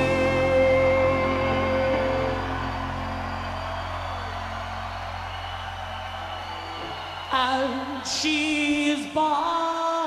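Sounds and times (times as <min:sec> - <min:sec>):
faint electric guitar notes: 0:00.0 - 0:04.6
band music: 0:00.0 - 0:05.2.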